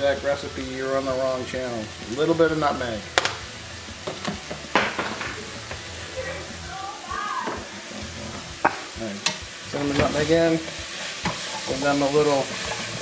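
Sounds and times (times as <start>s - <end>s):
apples sizzling in a pan: 0.0s - 13.0s
utensils clicking on pan: 3.1s - 5.9s, 7.4s - 13.0s.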